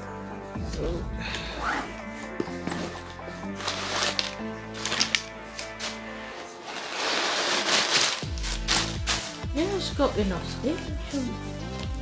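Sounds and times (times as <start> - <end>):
background music with held notes: 0.0 - 12.0
bags and fabric rustling: 1.5 - 12.0.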